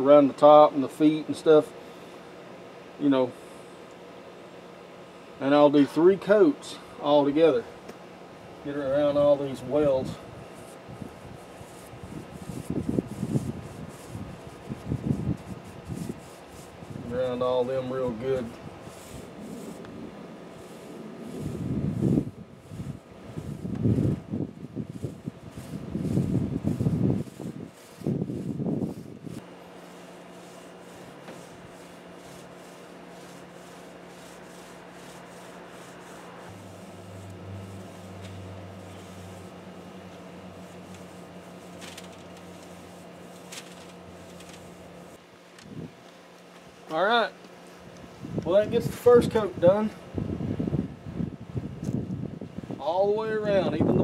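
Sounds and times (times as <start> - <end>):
steady low hum: 0.0 - 54.0
paintbrush rubbing on steel: 8.7 - 45.2.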